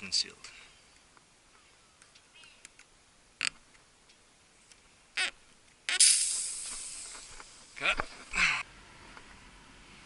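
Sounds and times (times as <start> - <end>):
air hissing from tyre: 5.9 - 7.8.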